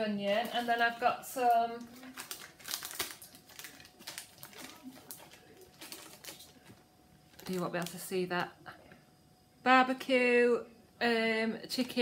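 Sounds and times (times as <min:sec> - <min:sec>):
plastic packaging crinkling: 0:00.0 - 0:08.6.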